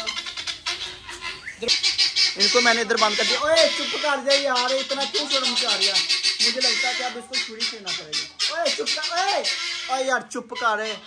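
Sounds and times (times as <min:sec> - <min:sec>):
birds squawking: 0:00.0 - 0:11.0.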